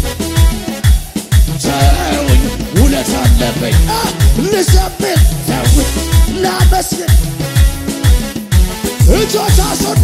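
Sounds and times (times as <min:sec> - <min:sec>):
keyboard melody and chords: 0:00.0 - 0:10.0
upbeat gospel music: 0:00.0 - 0:10.0.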